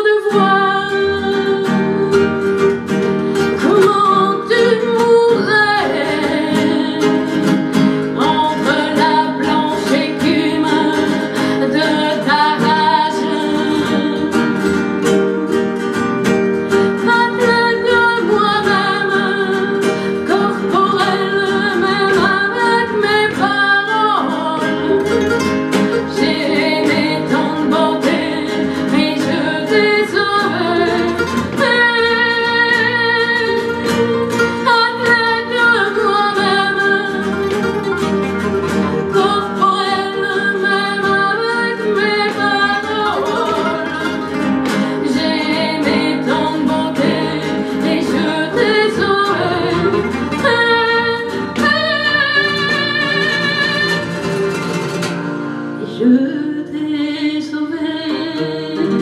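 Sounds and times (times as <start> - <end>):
woman singing: 0.0 - 54.8, 55.8 - 59.0
acoustic guitars: 0.0 - 59.0.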